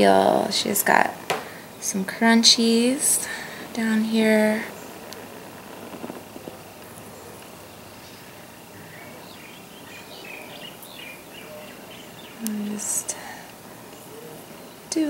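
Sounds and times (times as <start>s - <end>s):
birds chirping: 0.0s - 15.0s
faint high whine: 0.0s - 15.0s
short hiss: 1.2s - 14.5s.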